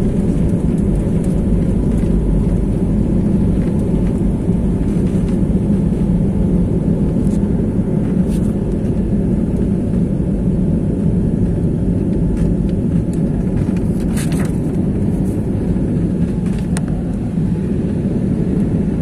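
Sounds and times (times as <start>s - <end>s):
jet engines and airflow rumble: 0.0s - 19.0s.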